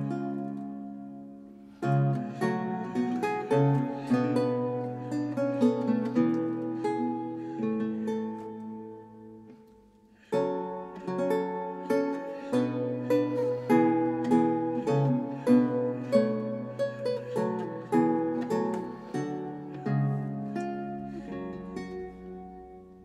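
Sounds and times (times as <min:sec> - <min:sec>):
solo lute plucked notes and chords: 0:00.0 - 0:23.0.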